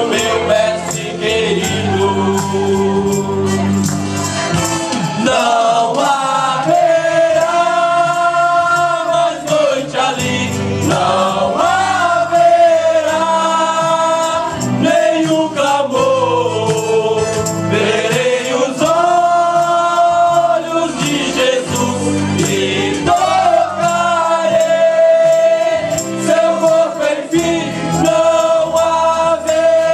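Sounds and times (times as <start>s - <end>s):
men's group singing a hymn: 0.0s - 3.9s, 5.0s - 29.9s.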